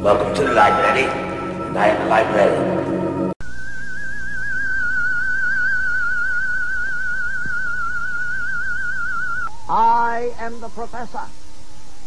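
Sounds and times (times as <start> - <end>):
man's voice: 0.0 - 2.9, 9.7 - 11.4
high wavering vibrato tone: 0.0 - 10.0.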